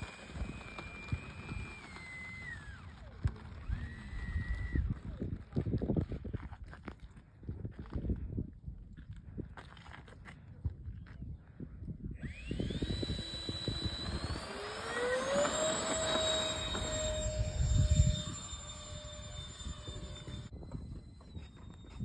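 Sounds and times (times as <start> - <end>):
model airplane motor whining: 0.0 - 5.4, 12.2 - 22.0
wind buffeting microphone: 0.0 - 9.8, 10.4 - 22.0
faint steady whine: 12.2 - 22.0.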